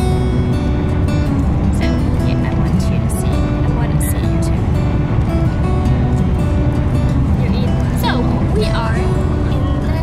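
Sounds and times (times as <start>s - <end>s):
car road noise: 0.0s - 10.0s.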